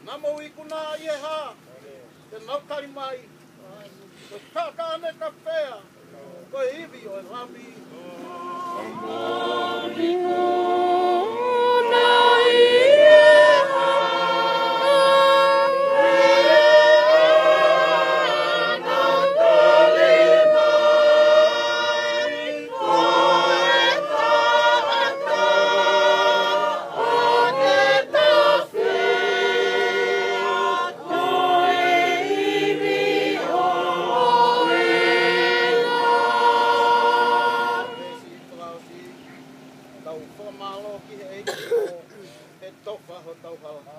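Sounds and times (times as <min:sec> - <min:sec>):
choir singing unaccompanied: 0:07.8 - 0:38.8.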